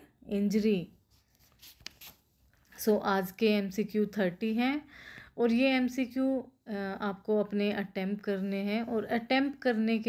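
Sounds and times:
woman speaking: 0:00.0 - 0:01.0, 0:02.7 - 0:10.0
faint rubbing sounds: 0:01.0 - 0:02.8.

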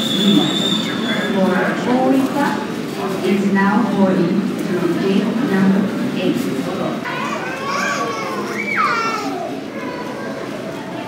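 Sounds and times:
chatter of passengers: 0:00.0 - 0:11.0
child's high-pitched voice: 0:07.1 - 0:10.6.

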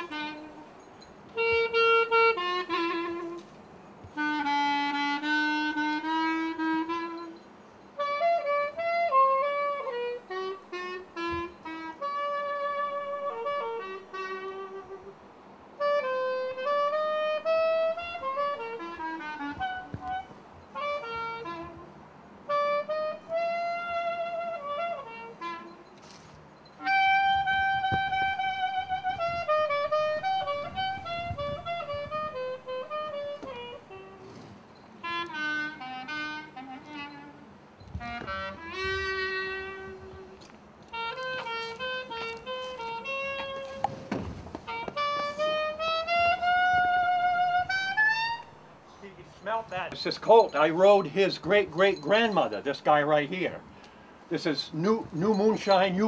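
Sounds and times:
reed woodwind solo melody: 0:00.0 - 0:56.0.

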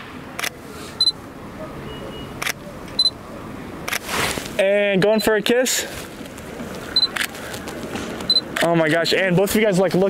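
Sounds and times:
camera autofocus beep: 0:01.9 - 0:03.2, 0:07.0 - 0:07.2, 0:08.3 - 0:08.5.

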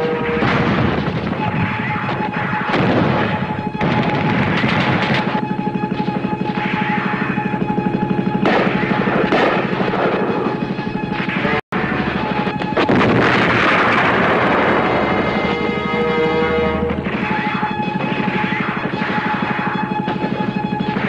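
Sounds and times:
dramatic film score: 0:00.0 - 0:21.0
gunfire: 0:00.1 - 0:05.5, 0:08.4 - 0:10.5, 0:12.6 - 0:15.6
explosions: 0:00.2 - 0:05.4, 0:08.4 - 0:10.4, 0:12.3 - 0:15.7.

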